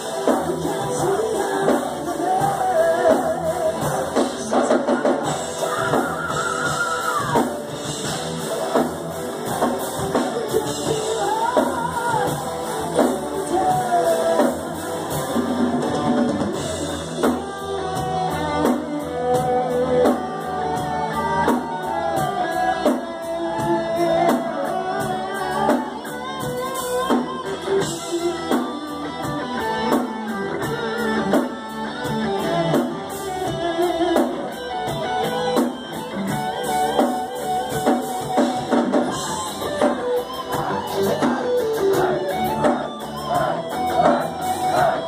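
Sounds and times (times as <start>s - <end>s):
fast drum beat: 0.0s - 18.0s, 36.7s - 45.0s
bass guitar: 0.0s - 45.0s
distorted electric guitar lead: 0.0s - 45.0s.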